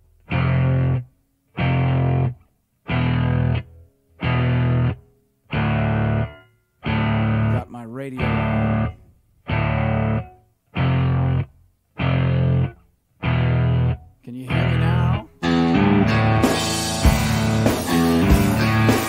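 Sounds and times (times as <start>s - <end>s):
distorted electric guitar chords: 0.0s - 19.0s.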